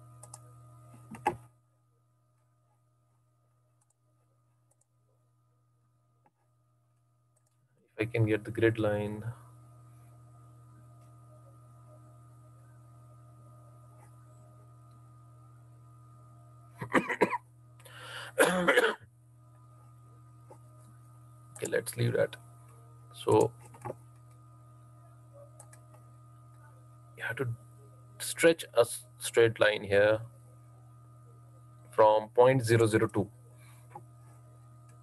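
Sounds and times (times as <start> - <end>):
low steady hum: 0.0 - 35.0
computer mouse clicks: 0.2 - 1.4, 25.6 - 26.0
man clearing his throat: 16.8 - 17.4, 18.4 - 19.0.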